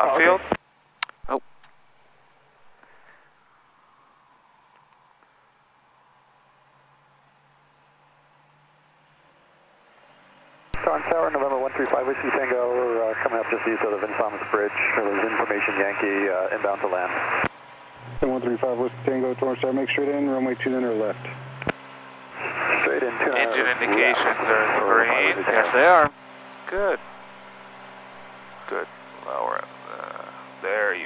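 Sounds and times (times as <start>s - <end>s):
person talking over radio: 10.8s - 17.5s, 22.4s - 26.1s, 26.7s - 27.0s, 28.7s - 31.0s.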